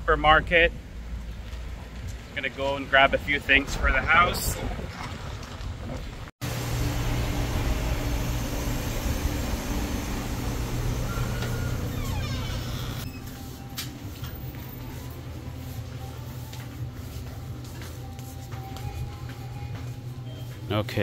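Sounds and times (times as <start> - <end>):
low machine hum: 6.4 - 13.2.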